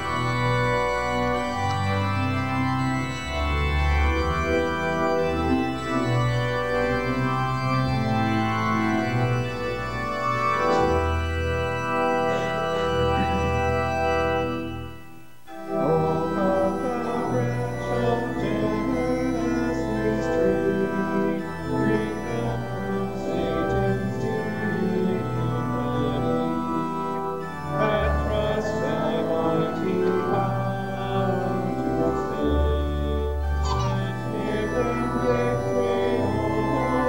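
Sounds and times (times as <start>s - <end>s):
organ playing hymn chords: 0.0s - 37.0s.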